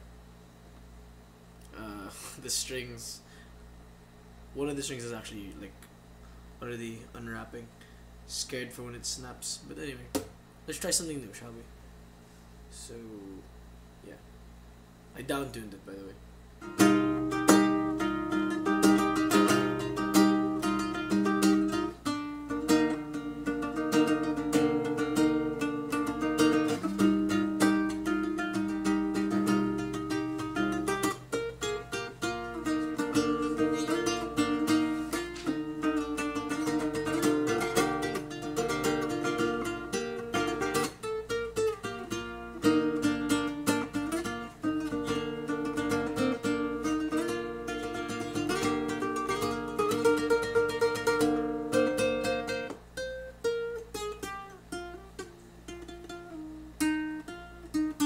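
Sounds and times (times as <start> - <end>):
solo classical guitar: 16.6 - 58.0.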